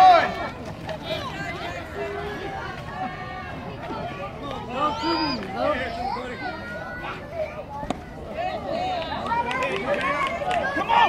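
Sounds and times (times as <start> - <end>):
people calling out: 0.0 - 11.0.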